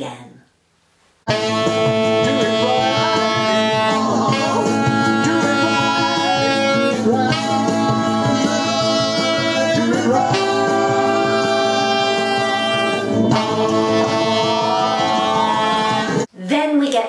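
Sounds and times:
alto saxophone holding long notes: 1.3 - 16.3
soul backing track: 1.3 - 16.3
man singing: 2.2 - 16.2.

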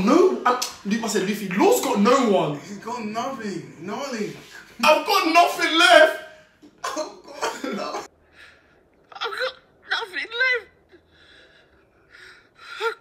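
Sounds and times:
person speaking: 0.0 - 8.1.

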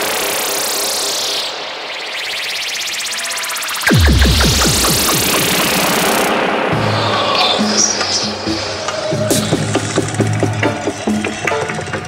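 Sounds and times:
rising hiss sweep: 0.0 - 8.4
falling pitch sweeps: 0.7 - 7.7
deep bass drop: 3.8 - 7.0.

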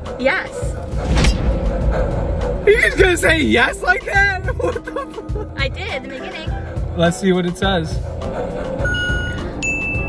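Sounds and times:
background music with steady beat: 0.0 - 10.0
electronic toy beeps: 8.8 - 10.0.

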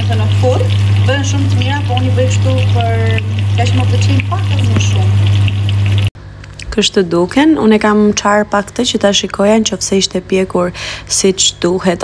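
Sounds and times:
chicken sizzling in hot oil: 0.0 - 6.1
oil crackling spatters: 0.0 - 6.1.

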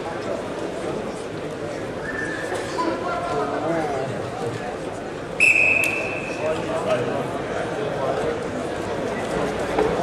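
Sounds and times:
hall background murmur: 0.0 - 10.0.

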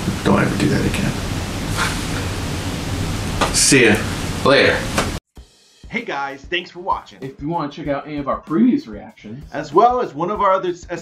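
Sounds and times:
steady background hiss: 0.0 - 5.2
short burst of bright hiss: 1.6 - 2.3.

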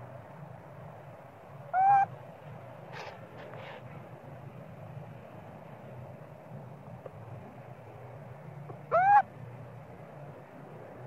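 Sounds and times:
faint outdoor background: 0.0 - 11.0
monkey call: 1.7 - 2.1, 8.9 - 9.3.

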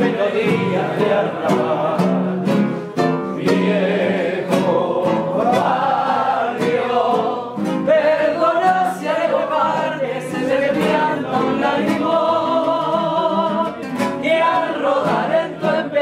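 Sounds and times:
acoustic guitar: 0.0 - 16.0
people singing tango: 0.0 - 16.0.

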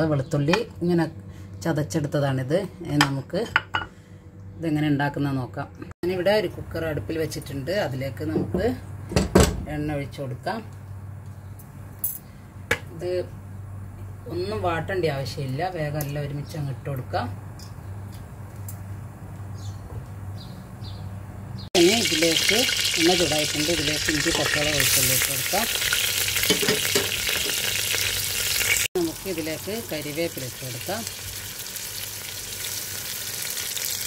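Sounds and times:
garlic and chillies sizzling in oil: 21.8 - 34.0.

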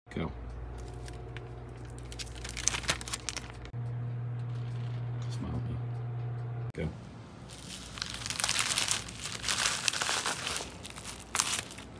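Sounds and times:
steady low hum: 0.1 - 11.9
plastic bag crinkling: 1.8 - 3.7, 7.5 - 11.9.

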